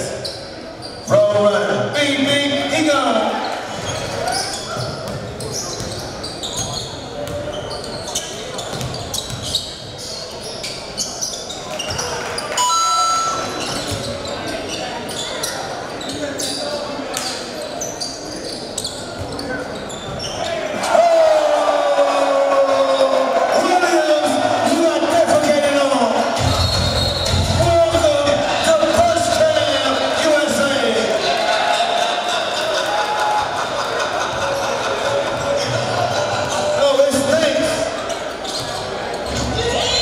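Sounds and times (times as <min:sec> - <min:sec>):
sneakers squeaking on floor: 0:00.0 - 0:01.3, 0:03.4 - 0:20.9, 0:26.4 - 0:27.7, 0:33.9 - 0:40.0
chatter of voices: 0:02.3 - 0:40.0.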